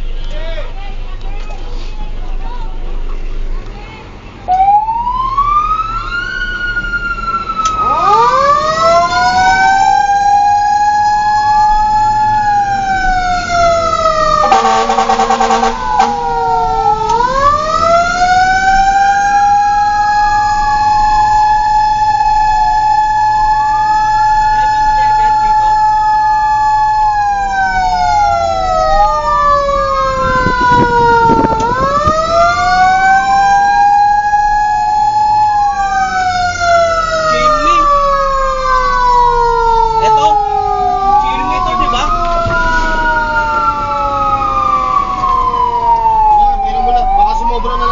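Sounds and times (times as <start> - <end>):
fire truck siren wailing: 4.4 - 47.9
pulsing horn blast: 11.0 - 19.8.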